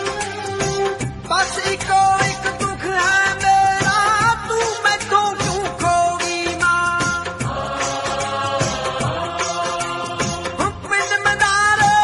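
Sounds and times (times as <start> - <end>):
song with steady beat: 0.0 - 12.0.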